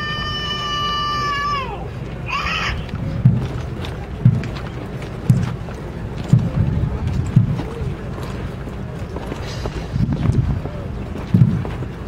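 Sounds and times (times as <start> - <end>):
wind rumble on microphone: 1.9 - 12.0
low heavy drum thumps: 3.2 - 3.6, 4.2 - 4.6, 5.2 - 5.6, 6.2 - 7.7, 9.6 - 11.8.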